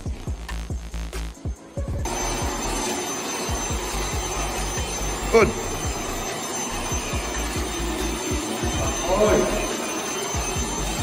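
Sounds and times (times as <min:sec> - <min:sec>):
music with thudding bass beat: 0:00.0 - 0:02.8
vacuum cleaner running: 0:02.0 - 0:11.0.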